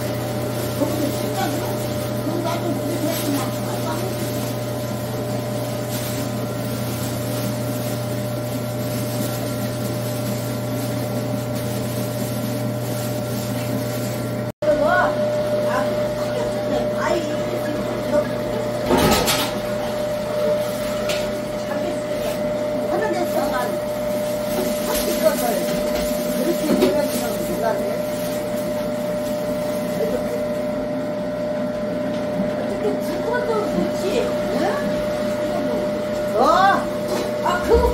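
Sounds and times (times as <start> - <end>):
electric grinder motor humming: 0.0 - 37.9.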